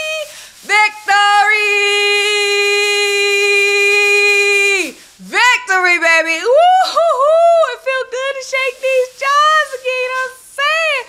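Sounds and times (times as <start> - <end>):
woman singing a chant: 0.0 - 11.0.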